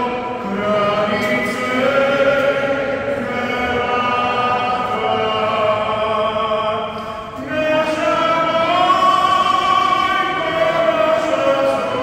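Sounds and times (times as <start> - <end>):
choir singing in a church: 0.0 - 12.0.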